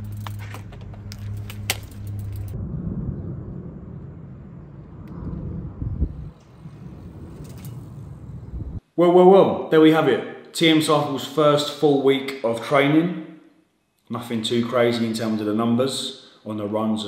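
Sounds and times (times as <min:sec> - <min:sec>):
wind and road rumble: 0:00.0 - 0:08.9
steady low hum: 0:00.0 - 0:09.0.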